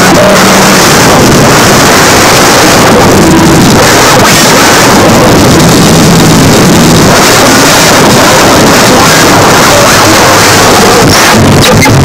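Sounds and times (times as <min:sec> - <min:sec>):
dense distorted noise music: 0:00.0 - 0:12.0.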